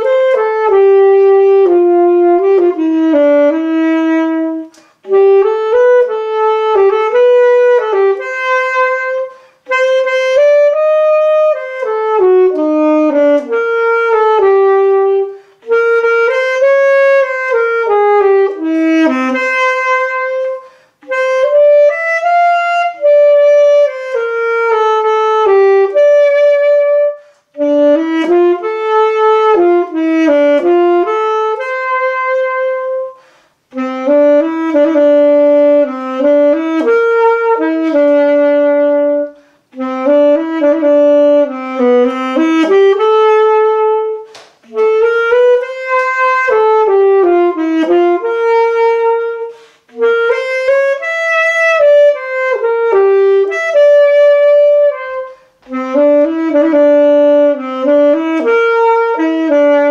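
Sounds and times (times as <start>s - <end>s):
solo alto saxophone melody: 0.0s - 59.9s.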